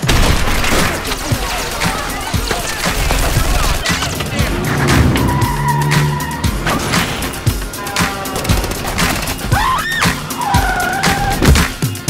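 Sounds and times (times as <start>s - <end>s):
music with heavy beat: 0.8s - 12.0s
car tyres squealing: 2.7s - 11.7s.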